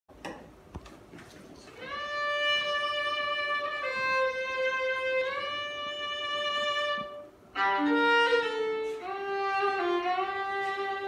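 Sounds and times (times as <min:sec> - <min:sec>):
fiddle bowed note: 0:01.8 - 0:11.0.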